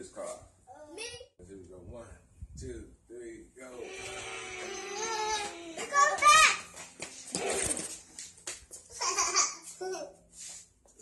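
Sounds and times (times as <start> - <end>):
high-pitched squeal: 3.7 - 6.0
children calling out in play: 4.0 - 6.8.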